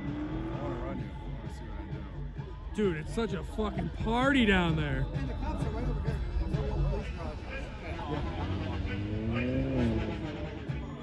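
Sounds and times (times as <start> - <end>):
car engine revving: 0.0 - 1.4, 6.1 - 11.0.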